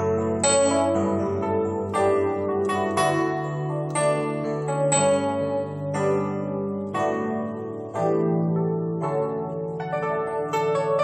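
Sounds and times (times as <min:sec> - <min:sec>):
digital keyboard chords: 0:00.0 - 0:11.0.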